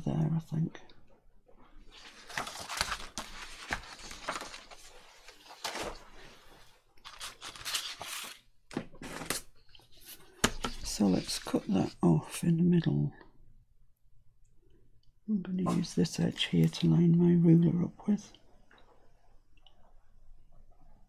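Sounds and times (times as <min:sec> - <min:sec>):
paper rustling: 0:01.8 - 0:12.0.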